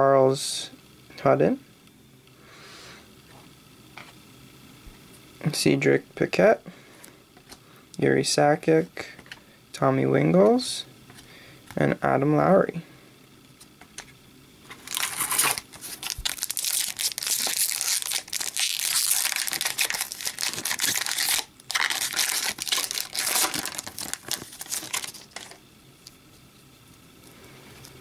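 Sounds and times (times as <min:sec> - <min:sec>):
foil wrapper tearing and crinkling: 0:14.8 - 0:25.6.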